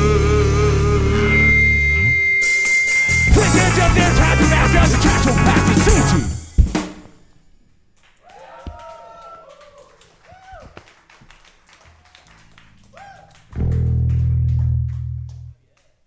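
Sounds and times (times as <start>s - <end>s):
electric guitar notes: 0.0s - 6.4s, 12.2s - 15.6s.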